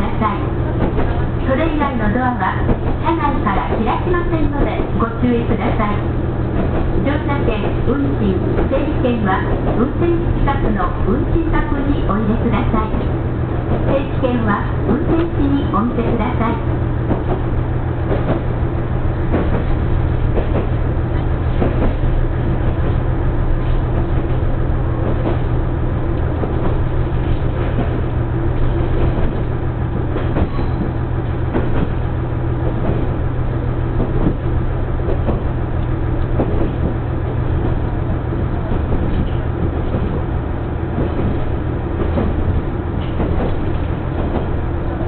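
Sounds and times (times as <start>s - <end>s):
railcar engine drone: 0.0s - 45.0s
wheels rumbling on track: 0.0s - 45.0s
wheels clicking over rails: 19.2s - 45.0s.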